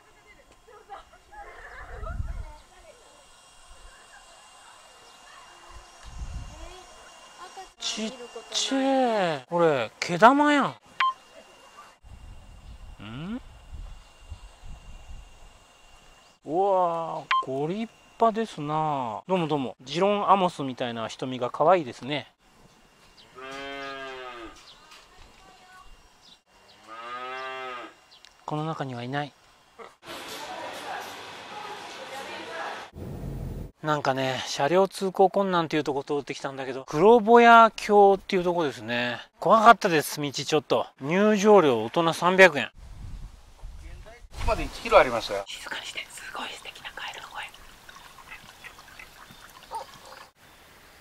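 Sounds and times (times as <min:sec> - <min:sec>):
cattle mooing: 0:23.4 - 0:24.6, 0:26.8 - 0:28.0
stream trickling over rocks: 0:46.1 - 0:50.4.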